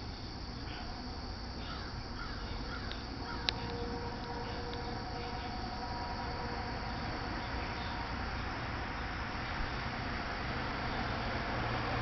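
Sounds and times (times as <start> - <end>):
faint hum: 0.0 - 12.0
outdoor background noise: 0.0 - 12.0.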